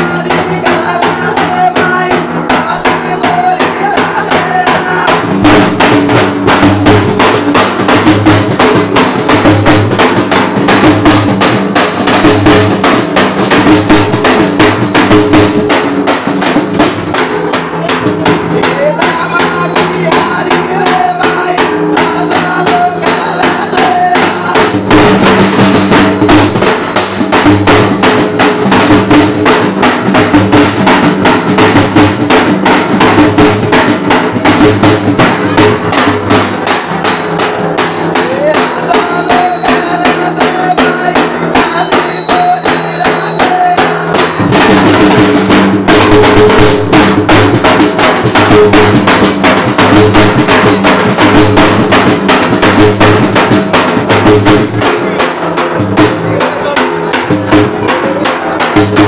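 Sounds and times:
frame drums beaten with sticks: 0.0 - 59.0.

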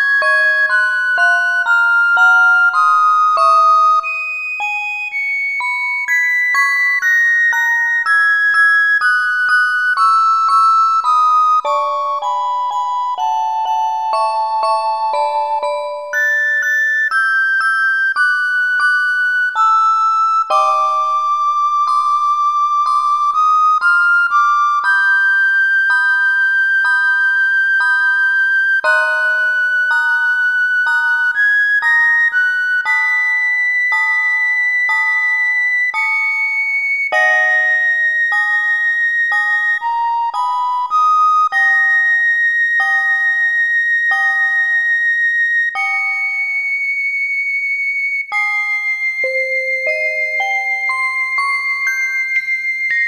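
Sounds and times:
celesta notes ringing: 0.0 - 8.2, 9.0 - 44.9, 48.3 - 53.0
recorder holding high notes: 18.2 - 53.0.

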